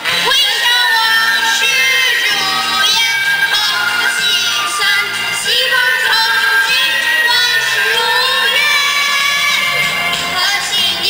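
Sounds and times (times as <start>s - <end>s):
boy singing into a microphone: 0.0s - 11.0s
musical accompaniment: 0.0s - 11.0s.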